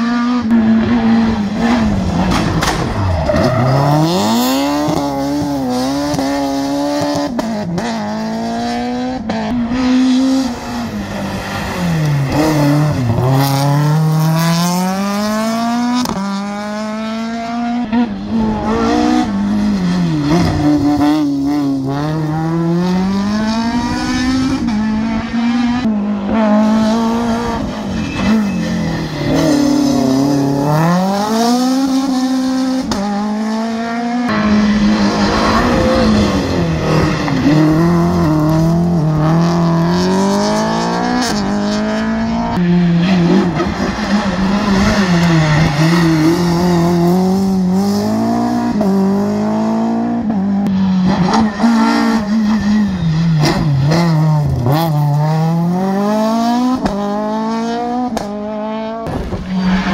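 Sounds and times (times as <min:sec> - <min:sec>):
rally car engines revving: 0:00.0 - 0:59.9.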